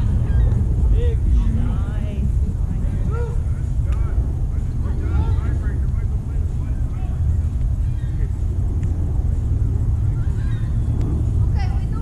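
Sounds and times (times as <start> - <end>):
faint distant voices: 0.0 - 12.0
wind rumbling on microphone: 0.0 - 12.0.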